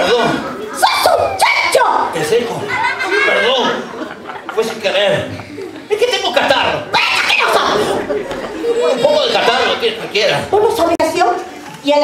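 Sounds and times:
indistinct voices chattering: 0:00.0 - 0:12.0.

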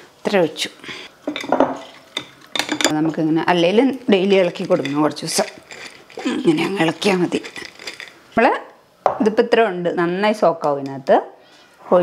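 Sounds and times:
glass bottles and jars clinking: 0:01.2 - 0:03.0, 0:04.3 - 0:08.1.

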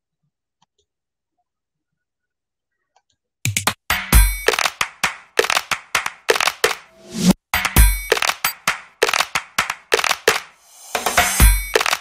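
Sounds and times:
sharp cracking percussive hits: 0:03.5 - 0:12.0.

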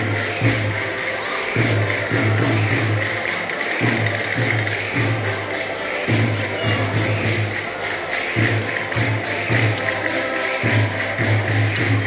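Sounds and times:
folk dance music: 0:00.0 - 0:12.0
jingling percussion beat: 0:00.0 - 0:12.0.

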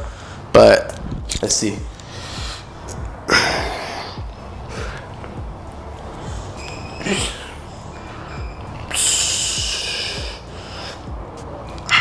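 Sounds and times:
music with deep bass beat: 0:00.0 - 0:12.0
hissing exhale through teeth: 0:08.9 - 0:11.1.

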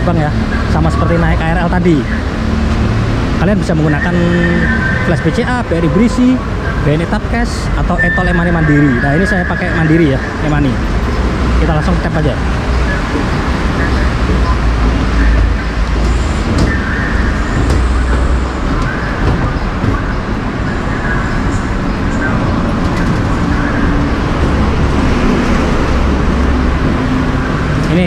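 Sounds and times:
city traffic rumble: 0:00.0 - 0:28.0.

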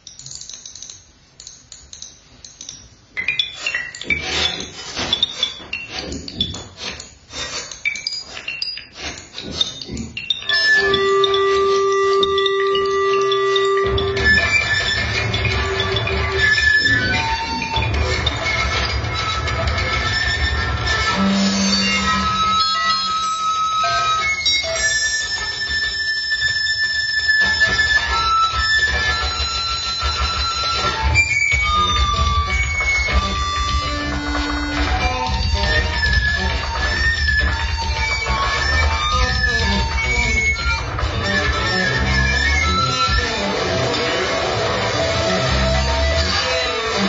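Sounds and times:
violin improvisation: 0:09.0 - 0:47.0.

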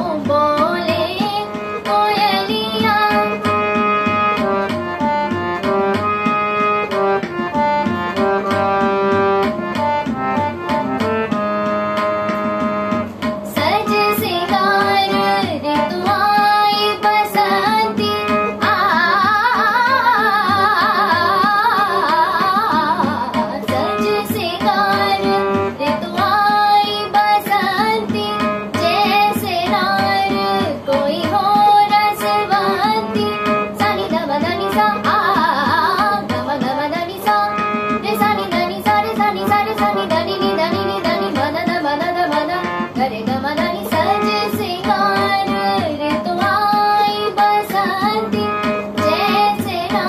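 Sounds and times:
girl singing: 0:00.0 - 0:03.9, 0:13.5 - 0:50.0
harmonium melody: 0:00.0 - 0:50.0.

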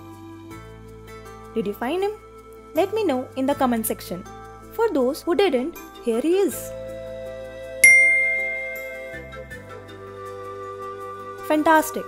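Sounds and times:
soft background music: 0:00.0 - 0:12.0
bright ding: 0:07.8 - 0:09.3.

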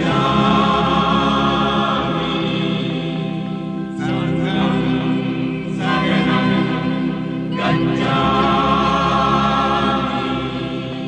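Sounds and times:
choir singing long held notes: 0:00.0 - 0:11.0
sustained low accompaniment: 0:00.0 - 0:11.0.

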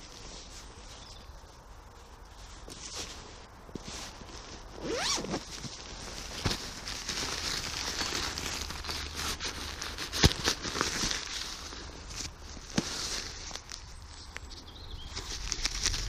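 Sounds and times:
rustling nylon fabric: 0:00.0 - 0:14.2, 0:15.1 - 0:16.0
zip pulled open: 0:04.8 - 0:05.5.

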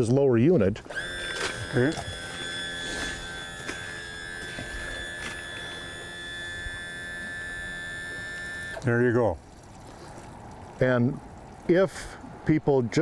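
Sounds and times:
electric motor whining: 0:00.8 - 0:08.8.

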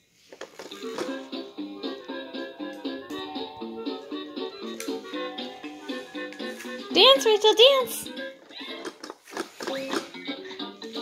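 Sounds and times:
plastic clicks: 0:08.6 - 0:10.2.

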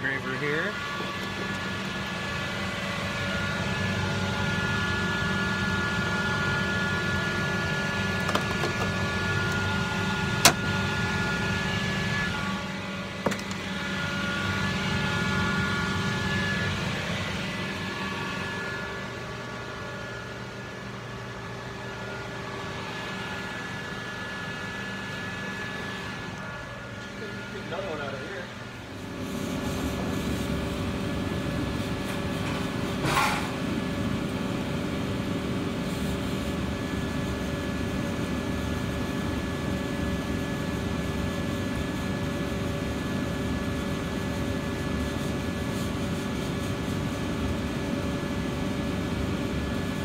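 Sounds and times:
whining fans and motors: 0:00.0 - 0:50.0
laser engraver humming: 0:00.2 - 0:33.0.

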